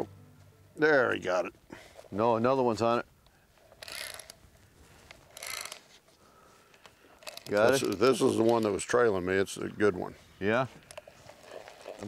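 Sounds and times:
fishing reel clicking rapidly: 3.8 - 4.4, 5.3 - 5.8, 7.2 - 8.6.

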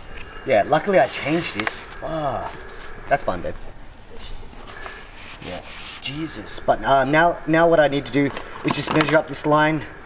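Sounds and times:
cloth rubbing on wet cardboard: 0.9 - 1.9, 4.6 - 6.2.

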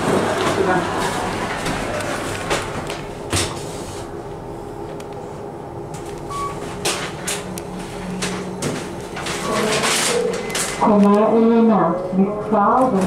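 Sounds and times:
elevator cabin hum: 0.0 - 13.0.

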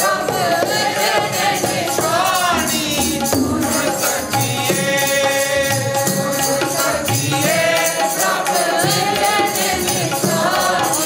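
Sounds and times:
devotional chanted singing: 0.0 - 11.0.

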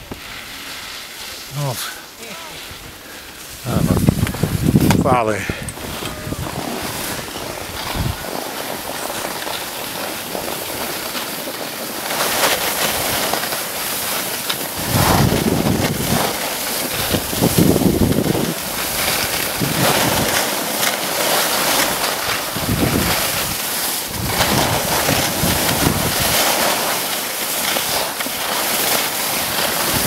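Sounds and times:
skis sliding on snow: 0.0 - 30.0
wind buffeting microphone: 2.7 - 9.3, 14.8 - 20.4, 22.5 - 26.4.

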